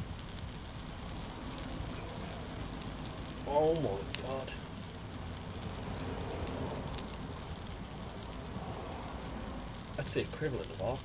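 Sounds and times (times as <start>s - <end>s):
fire crackle: 0.0s - 11.0s
fire hissing: 0.0s - 11.0s.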